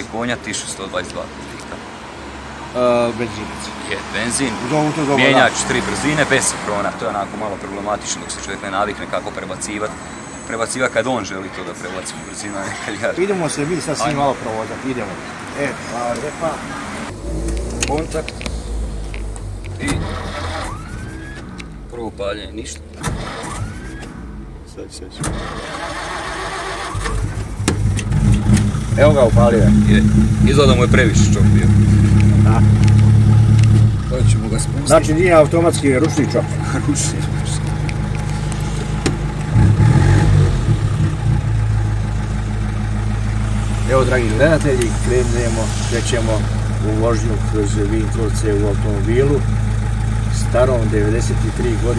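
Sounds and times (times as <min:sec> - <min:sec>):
car engine idling: 0:00.0 - 0:51.9
car starter cranking engine: 0:19.8 - 0:21.9, 0:22.6 - 0:24.5, 0:25.1 - 0:29.3.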